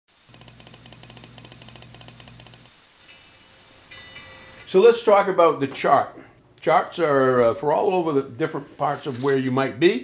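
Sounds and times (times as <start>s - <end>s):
faint held tone: 0.3s - 2.7s
rapid even clicking: 0.3s - 2.7s.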